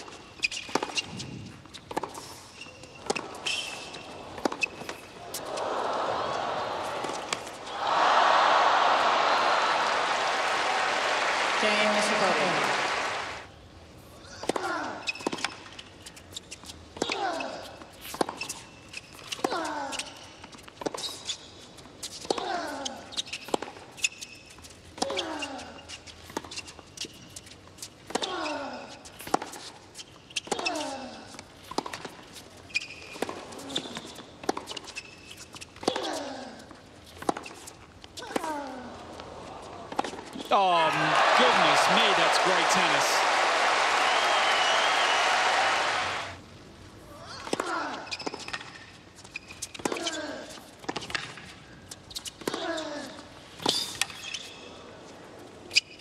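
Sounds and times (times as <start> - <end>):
crowd cheering and applause: 5.4 - 13.5, 40.5 - 46.4.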